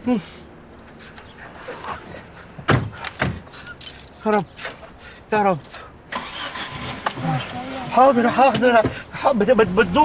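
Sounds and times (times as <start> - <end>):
car keys jangling: 3.0 - 4.5.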